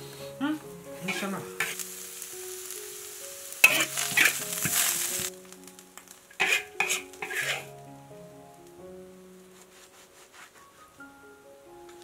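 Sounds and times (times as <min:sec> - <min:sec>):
food sizzling in a wok: 0:00.0 - 0:07.8
soft background music: 0:00.0 - 0:12.0
spatula strokes in a wok: 0:01.0 - 0:05.3, 0:06.4 - 0:07.7, 0:09.5 - 0:11.0.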